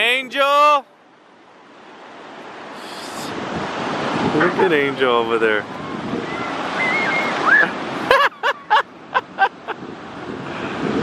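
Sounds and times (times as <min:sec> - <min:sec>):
ocean surf breaking: 0:00.0 - 0:11.0
wind buffeting microphone: 0:01.9 - 0:11.0
high-pitched laugh: 0:08.0 - 0:09.8.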